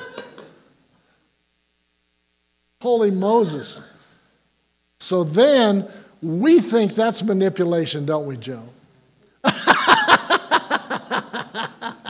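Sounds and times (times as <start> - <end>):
man talking: 2.8 - 4.0, 5.0 - 8.8.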